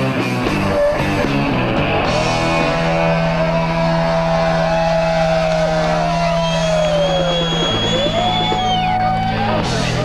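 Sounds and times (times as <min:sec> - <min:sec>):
distorted electric guitar note: 0:00.0 - 0:08.4
held bass note: 0:00.1 - 0:08.7.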